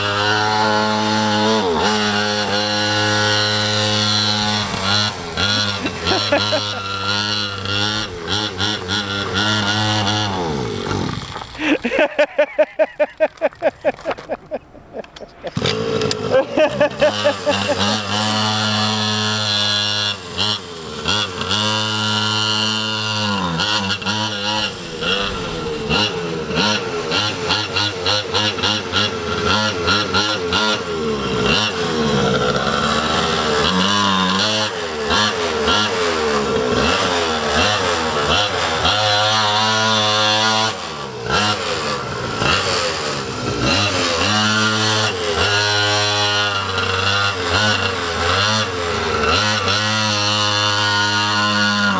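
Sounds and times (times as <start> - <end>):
small two-stroke engine revving: 0.0 - 13.1, 15.4 - 51.9.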